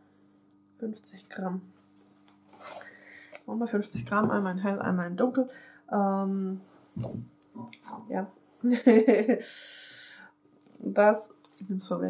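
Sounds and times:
faint steady hum: 0.0 - 12.0
woman speaking: 0.8 - 1.7, 3.5 - 10.2, 10.8 - 12.0
soft low thump: 4.0 - 4.4
woman laughing: 8.6 - 9.6.

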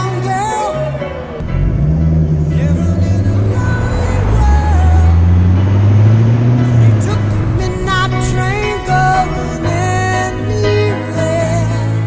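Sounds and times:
car engine accelerating: 0.0 - 12.0
music with singing: 0.0 - 12.0.

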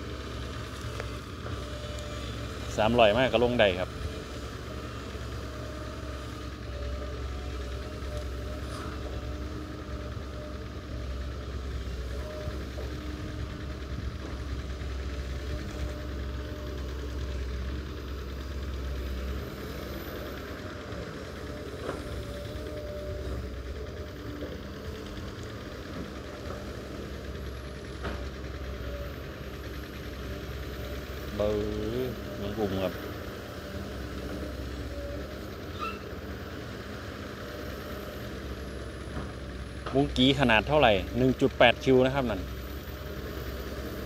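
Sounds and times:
excavator diesel engine under load: 0.0 - 44.0.

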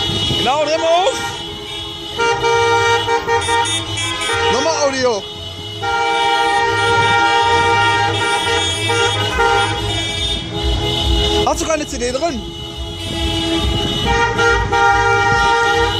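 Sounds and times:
car horns honking: 0.0 - 15.9.

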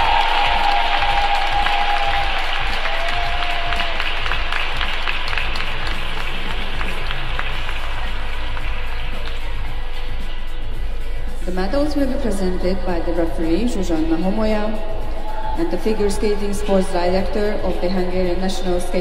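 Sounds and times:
audience applauding: 0.0 - 9.5
background music: 0.0 - 19.0.

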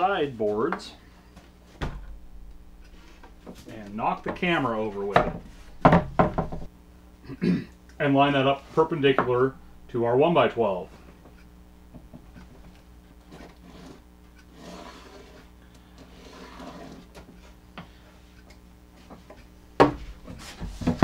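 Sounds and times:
wooden boards knocking and scraping: 2.9 - 6.7, 19.8 - 21.0
pencil scratching on wood: 13.2 - 17.6.

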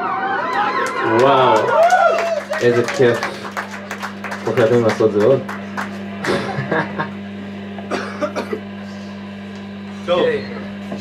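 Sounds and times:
amplifier electric hum: 0.0 - 11.0.

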